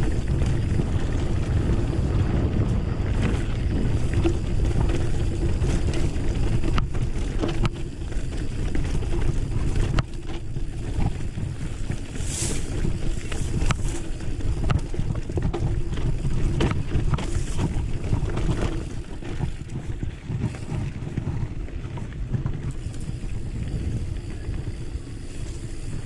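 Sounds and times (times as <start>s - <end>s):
bike clicking and rattling over stones: 0.0s - 26.0s
wind rumble on microphone: 0.0s - 26.0s.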